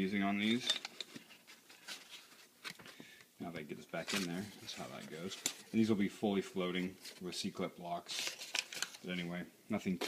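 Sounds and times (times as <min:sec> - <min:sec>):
tissue paper rustling: 0:01.0 - 0:02.7.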